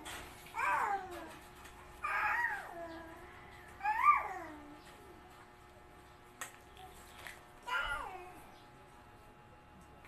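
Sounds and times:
toddler's high-pitched vocal call: 0.6 - 1.3, 2.0 - 3.1, 7.7 - 8.4.

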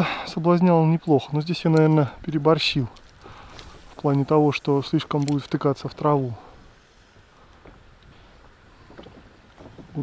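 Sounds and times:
low water noise: 0.0 - 10.0
light clicks: 1.7 - 2.1, 5.0 - 5.7.

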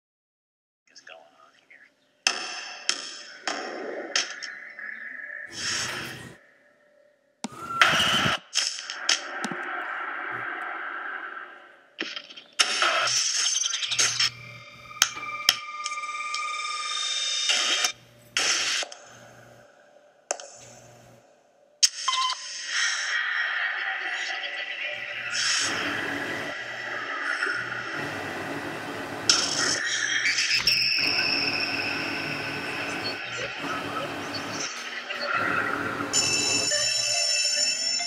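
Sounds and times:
montage of sound effects: 2.2 - 38.0.

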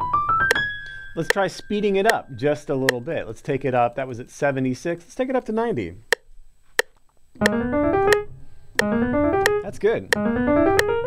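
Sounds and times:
metronome clicking: 0.5 - 3.2, 6.1 - 11.0
piano rising run: 7.4 - 11.0.

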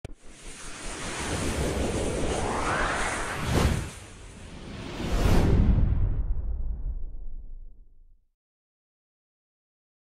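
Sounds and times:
whoosh with low rumble: 0.1 - 8.1.

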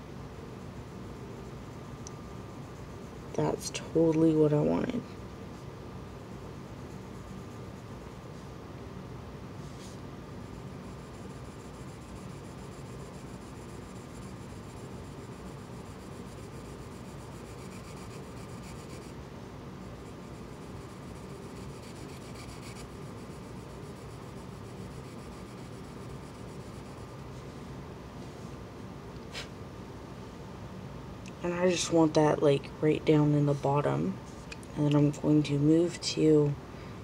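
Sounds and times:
pencil scratching on paper: 6.5 - 8.2, 10.4 - 19.2, 20.0 - 27.2.

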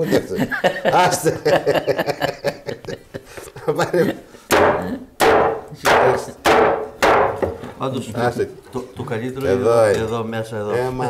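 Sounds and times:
knife chopping on wooden board: 4.5 - 7.6.

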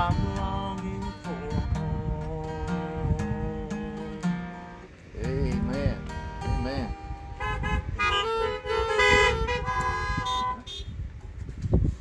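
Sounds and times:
car horns honking: 6.5 - 11.0.

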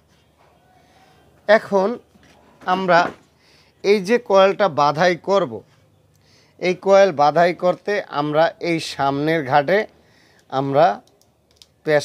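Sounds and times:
person speaking: 1.4 - 3.2, 6.6 - 12.0.

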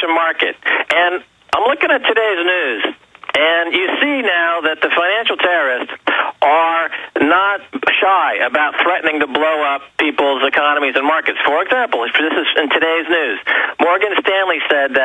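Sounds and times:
man talking over telephone line: 0.0 - 15.0.

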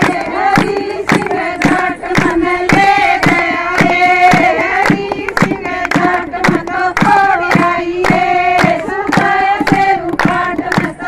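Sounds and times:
hand-clapping: 0.0 - 11.0
women singing folk song: 0.0 - 11.0.

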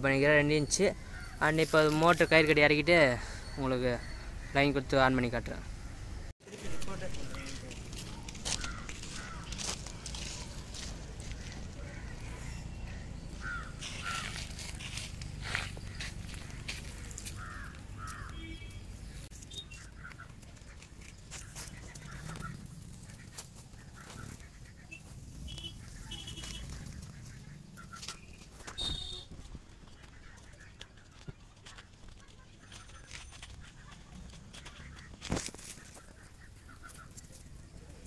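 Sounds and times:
outdoor background noise: 0.0 - 38.0
bird calls: 0.4 - 6.3, 7.2 - 38.0.

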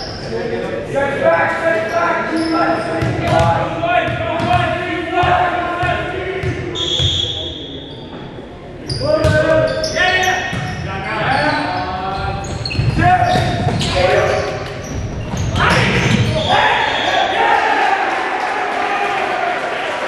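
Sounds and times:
players shouting: 2.2 - 6.8, 15.4 - 20.0.

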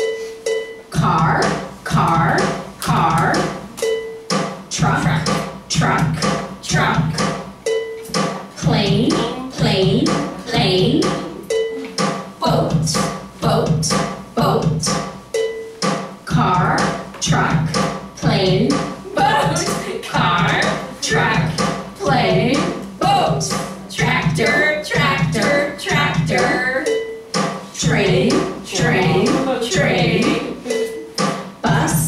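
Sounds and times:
rhythmic music backing: 0.0 - 32.0
person chanting words: 27.9 - 31.1.

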